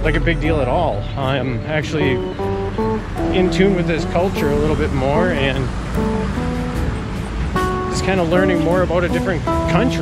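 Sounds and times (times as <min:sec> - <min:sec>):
music of sustained chords: 0:00.0 - 0:10.0.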